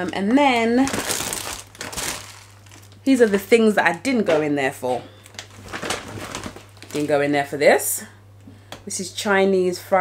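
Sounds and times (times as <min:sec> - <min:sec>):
shopping bag crinkling: 0:00.0 - 0:04.3, 0:05.2 - 0:07.4.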